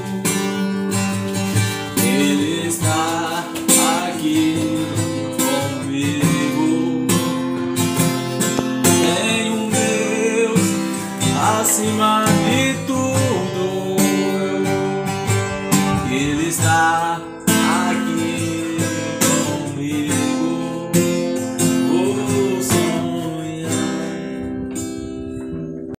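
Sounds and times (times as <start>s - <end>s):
man singing: 0.0s - 24.7s
acoustic guitar strumming: 0.0s - 26.0s.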